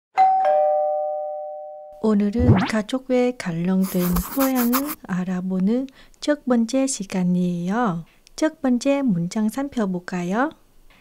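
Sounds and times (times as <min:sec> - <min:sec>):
two-note doorbell chime: 0:00.2 - 0:02.0.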